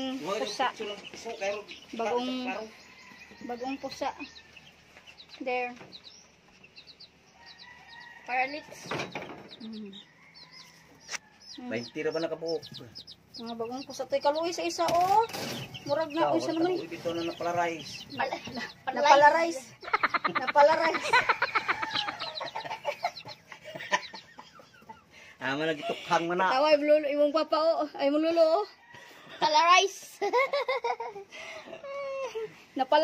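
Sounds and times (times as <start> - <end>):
chicks peeping: 0.0 - 33.0.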